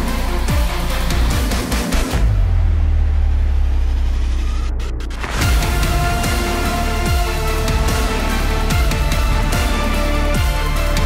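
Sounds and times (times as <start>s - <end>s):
deep low rumble: 2.2s - 9.6s.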